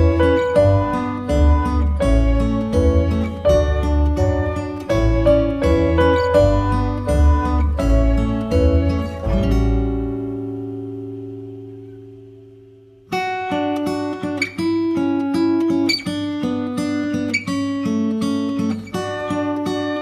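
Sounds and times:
plucked acoustic guitar: 0:00.0 - 0:20.0.

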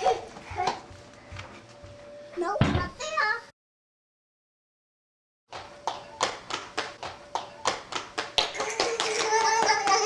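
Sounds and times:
child running on wooden floor: 0:05.5 - 0:10.0.

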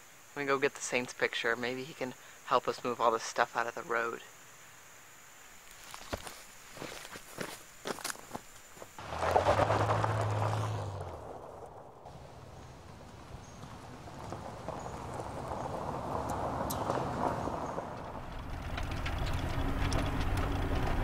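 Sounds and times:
footsteps on dry leaves: 0:05.7 - 0:10.3
van driving on gravel road: 0:05.8 - 0:21.0.

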